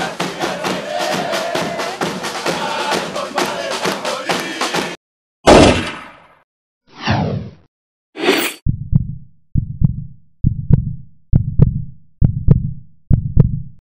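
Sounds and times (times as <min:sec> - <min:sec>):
heartbeat double thumps: 0:08.6 - 0:13.8.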